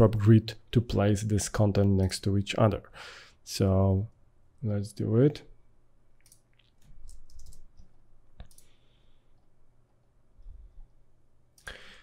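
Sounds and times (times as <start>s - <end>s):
computer keyboard keystrokes: 6.2s - 8.7s.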